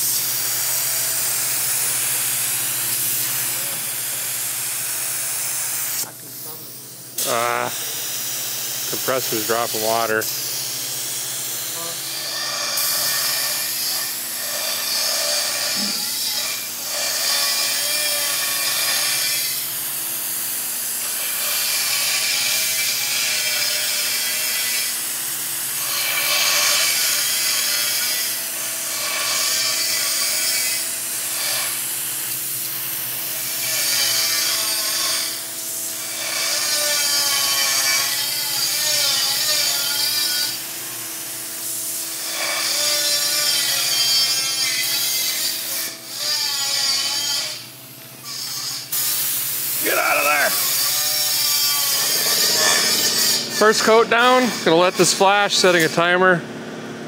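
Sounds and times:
paint spray gun hissing: 0.0 - 11.8, 48.9 - 54.6.

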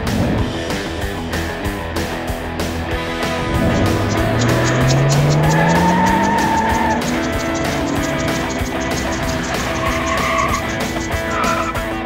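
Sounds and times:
music with steady beat: 0.1 - 12.0
car engine running: 3.0 - 12.0
tyres squealing: 3.3 - 12.0.

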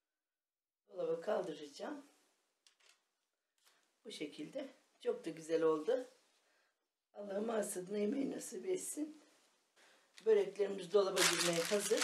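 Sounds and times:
gloved hands rustling: 11.1 - 12.0.

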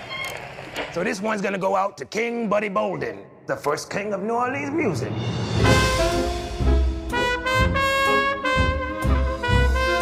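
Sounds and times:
jazz band playing: 5.4 - 10.0
trumpet short notes: 5.6 - 10.0.

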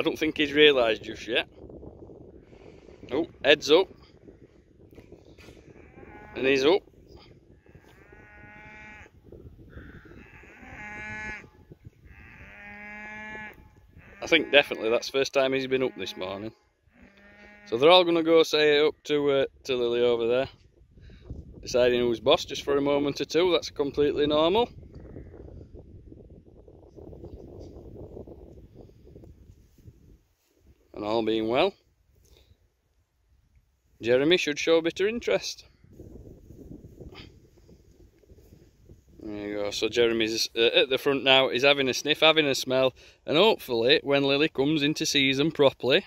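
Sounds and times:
wind buffeting microphone: 0.0 - 17.7, 19.4 - 42.6
cattle mooing: 5.7 - 6.7, 7.6 - 15.0, 15.6 - 17.8.

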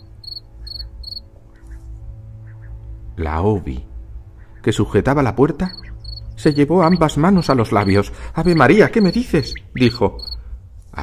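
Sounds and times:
cricket chirping: 0.0 - 1.3, 5.6 - 10.5
low steady drone: 0.0 - 11.0.

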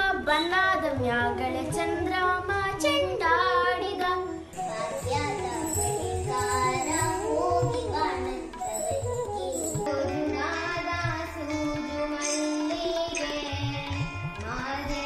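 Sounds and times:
child singing: 0.0 - 15.0
girl singing: 0.0 - 15.0
instrumental backing music: 0.0 - 15.0.

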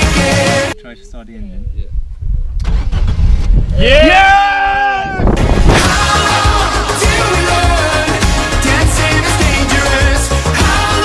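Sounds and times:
car engine starting and rumbling: 2.6 - 3.8
person shouting: 3.8 - 5.4.

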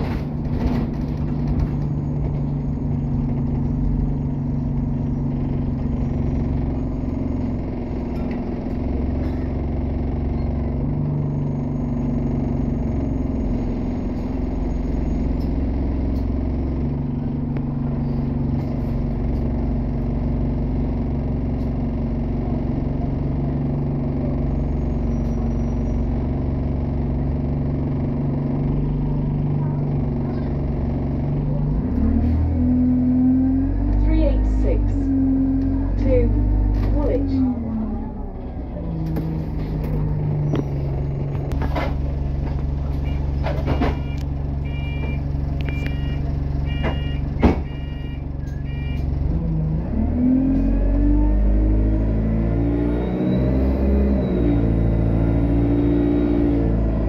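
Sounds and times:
bus engine droning: 0.0 - 57.0.

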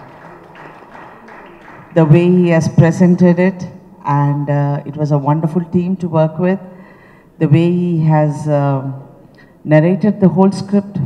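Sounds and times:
low hall noise: 0.0 - 11.0.

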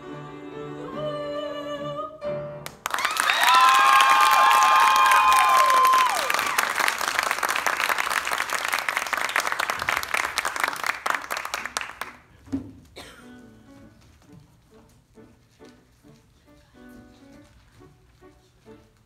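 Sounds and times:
audience applauding: 2.6 - 12.3
whooping cheers: 3.0 - 6.8.

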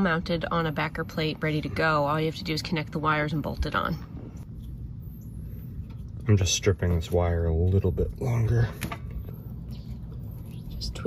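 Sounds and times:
low steady outdoor rumble: 0.0 - 11.0.

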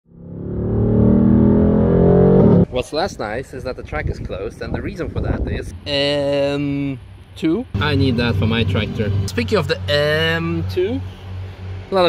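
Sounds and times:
car engine running: 7.8 - 11.0.

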